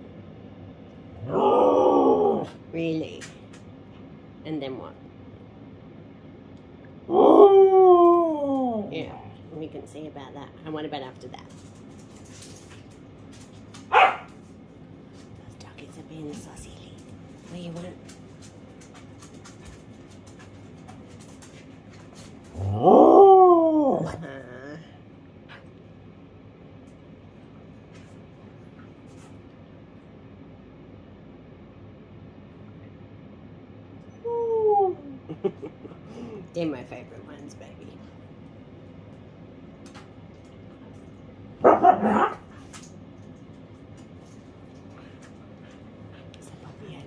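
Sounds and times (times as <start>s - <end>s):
husky howling: 1.2s - 2.6s, 7.1s - 9.1s, 22.5s - 24.3s
dog barking: 13.9s - 14.4s, 41.6s - 42.5s.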